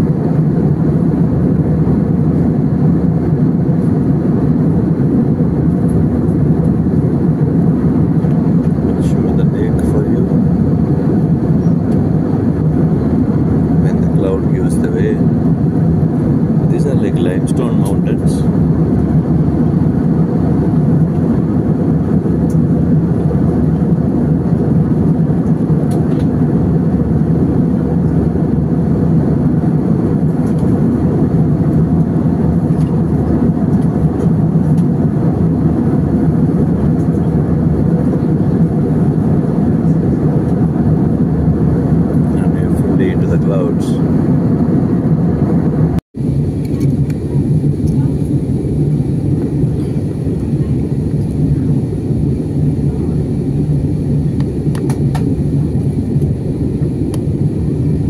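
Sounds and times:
jet engines droning: 0.0 - 58.0
rushing airflow: 0.0 - 58.0.

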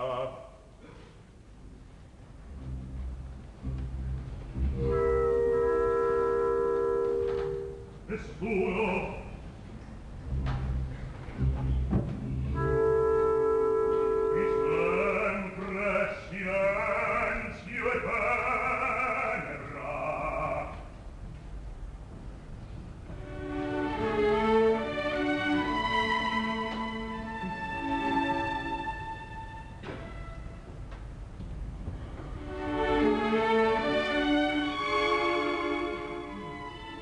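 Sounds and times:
orchestra sustained string chords: 2.3 - 20.8, 23.1 - 30.9, 31.9 - 37.0
orchestra holding sustained chord: 2.6 - 8.1, 11.4 - 15.2.

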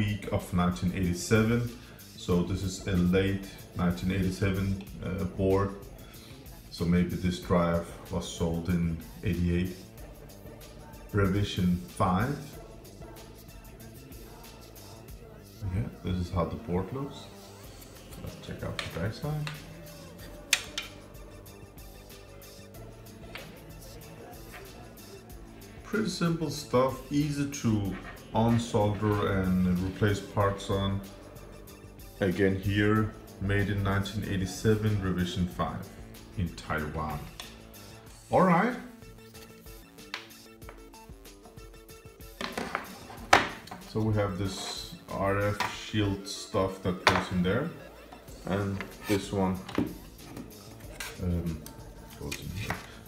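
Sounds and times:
soft background music: 0.0 - 53.0.

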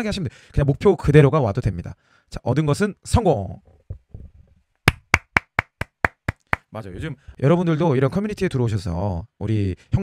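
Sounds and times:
hand claps: 4.9 - 6.7.

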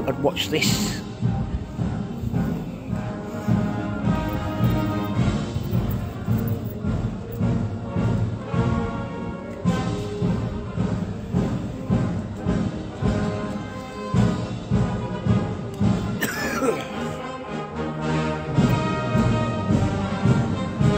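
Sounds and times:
steady drum beat: 0.0 - 16.8, 18.5 - 20.9
marching band playing: 0.0 - 20.9.

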